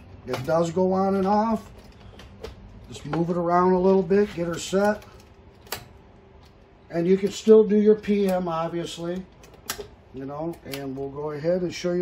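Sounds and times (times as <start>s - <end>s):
faint handling noise: 0.2s - 11.4s.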